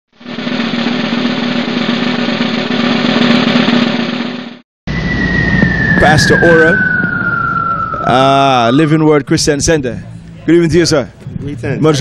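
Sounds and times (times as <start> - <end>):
drum roll: 0.2 - 8.3
high tone falling in pitch: 4.9 - 9.1.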